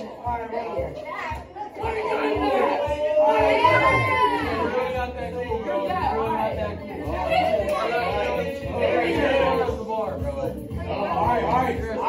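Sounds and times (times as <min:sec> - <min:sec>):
young people talking and calling out: 0:00.0 - 0:12.0.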